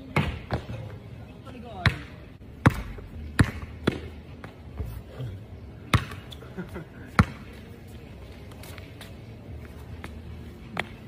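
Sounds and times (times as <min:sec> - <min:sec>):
basketball bouncing on hard court: 0:01.8 - 0:04.1, 0:05.9 - 0:06.2.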